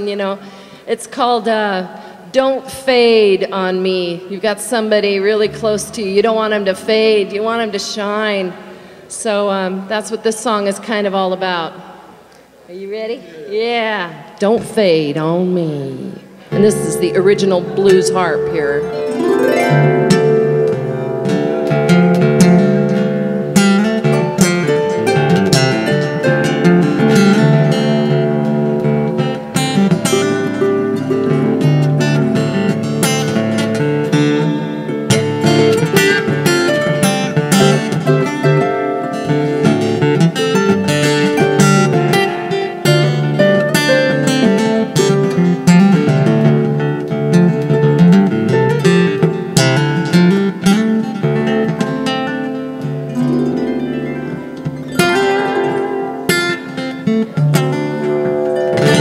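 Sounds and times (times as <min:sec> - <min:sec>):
acoustic guitar picked and strummed: 0:16.3 - 0:59.0
harp playing: 0:16.5 - 0:33.3, 0:52.2 - 0:56.3, 0:57.8 - 0:59.0.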